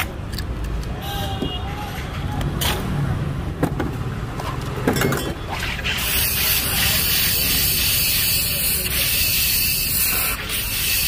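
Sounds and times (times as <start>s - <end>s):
street stall chatter: 0.0s - 11.0s
glass clinks: 5.0s - 5.4s
soda machine nozzle hissing: 5.9s - 11.0s.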